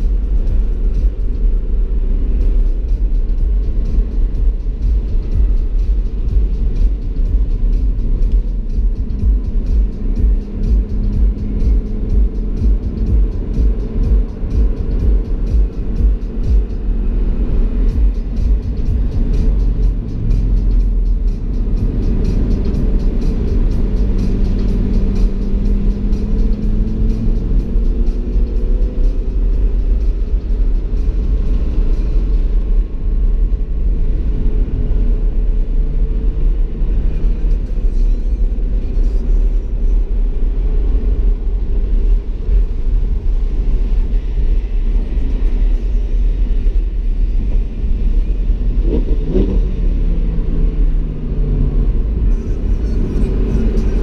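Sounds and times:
car engine rumbling at speed: 0.0s - 54.0s.

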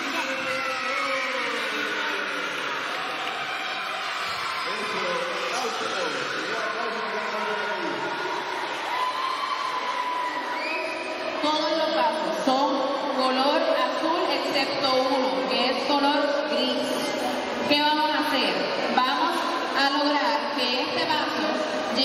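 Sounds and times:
children chattering and calling out: 0.0s - 8.6s.

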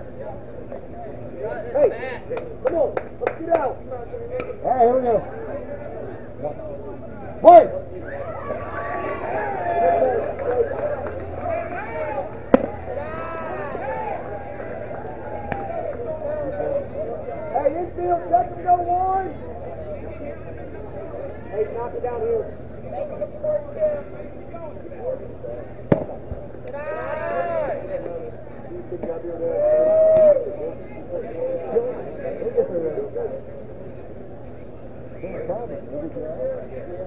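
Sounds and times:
people calling and chattering: 0.0s - 37.0s.

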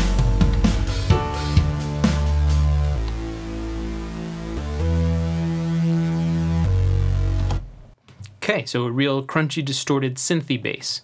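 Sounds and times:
distorted synth bass notes: 0.0s - 8.0s.

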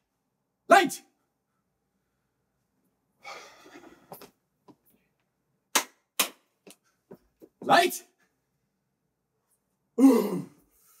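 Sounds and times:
sharp cracks: 5.7s - 6.5s.

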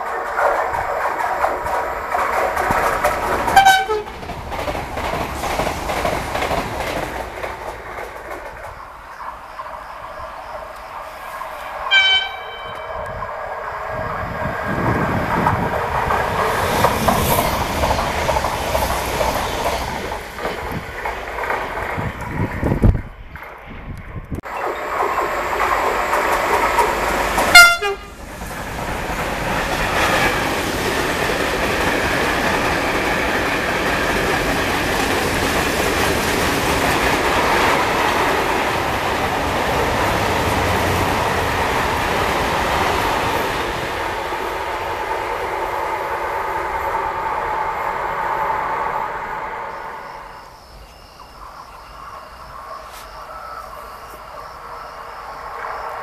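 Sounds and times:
train wagons rolling on rails: 0.0s - 56.0s
train horn blasts: 3.5s - 4.1s, 11.9s - 13.2s, 27.5s - 28.2s.

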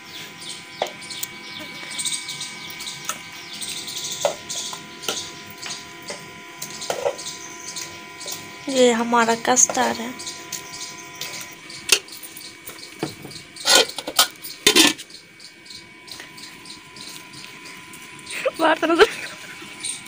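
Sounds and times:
metal spoon scraping pot: 13.6s - 15.0s.

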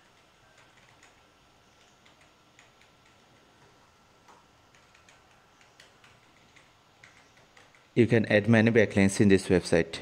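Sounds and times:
computer mouse and keyboard clicks: 0.0s - 8.0s.

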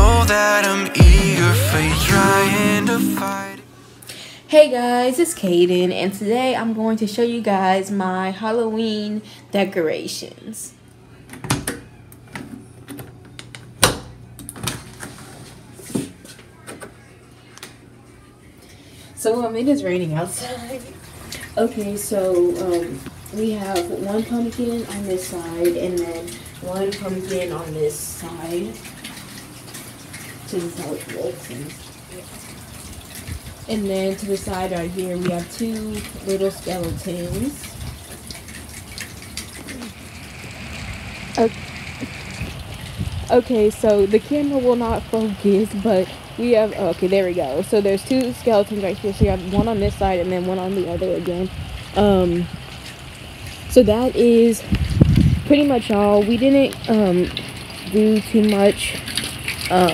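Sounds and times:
steady rain hiss: 19.2s - 59.9s
raindrops ticking: 20.2s - 59.9s.

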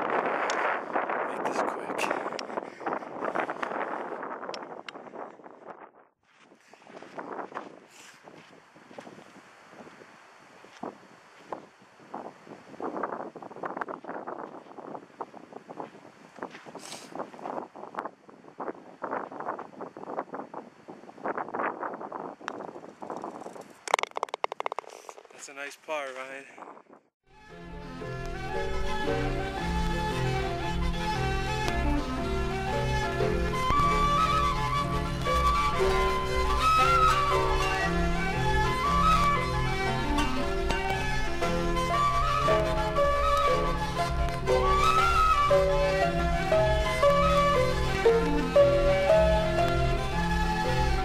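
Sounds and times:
wind buffeting microphone: 0.0s - 25.4s, 28.3s - 51.0s.

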